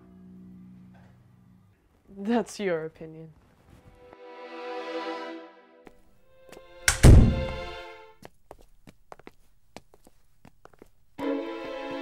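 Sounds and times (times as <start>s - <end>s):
fridge door thunk: 6.9s - 7.6s.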